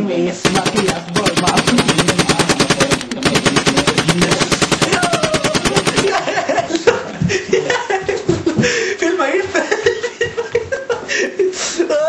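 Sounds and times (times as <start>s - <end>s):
machine-gun fire: 0.4s - 6.5s.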